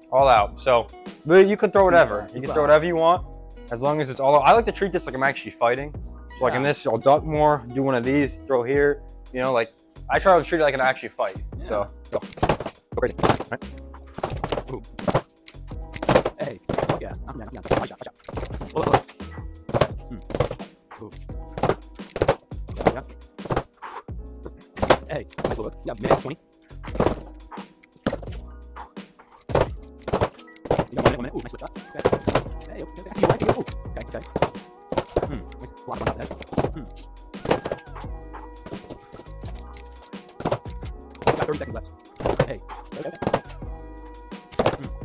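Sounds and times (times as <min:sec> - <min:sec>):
background music: 0:00.0 - 0:45.0
gloves punching a bag: 0:31.9 - 0:35.4, 0:36.1 - 0:38.0.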